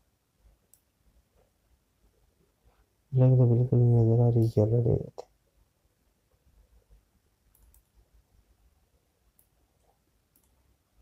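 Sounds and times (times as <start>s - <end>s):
computer mouse clicks: 0.7s - 0.9s, 7.5s - 8.0s, 9.3s - 10.7s.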